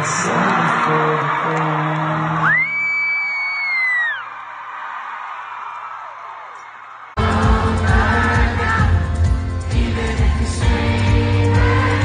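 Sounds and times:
crowd cheering: 0.0 - 8.9
high-pitched scream: 2.4 - 4.4
live band playing: 7.2 - 12.0.

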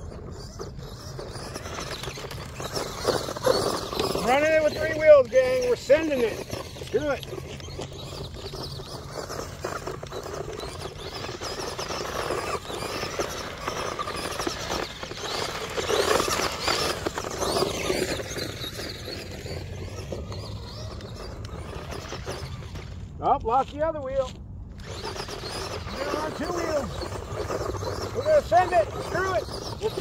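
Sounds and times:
toy truck electric motor whining: 0.0 - 23.2, 24.7 - 30.0.

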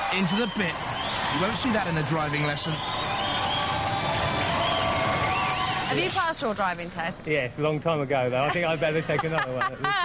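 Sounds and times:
shouts and whoops: 0.0 - 6.0
audience cheering and clapping: 0.0 - 6.2.

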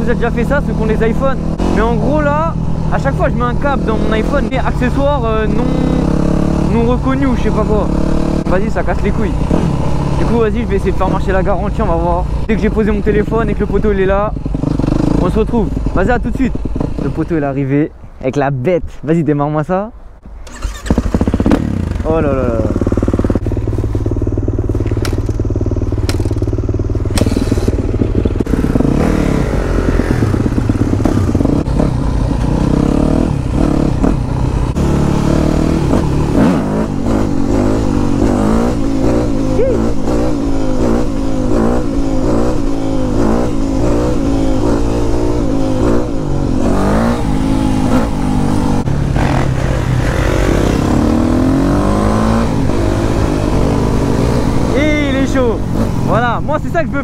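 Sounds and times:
dirt bike engine revving: 0.0 - 17.4, 20.4 - 57.0.

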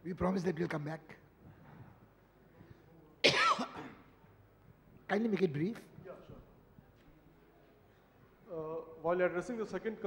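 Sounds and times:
faint room noise: 0.0 - 10.0
person coughing: 3.2 - 4.0.

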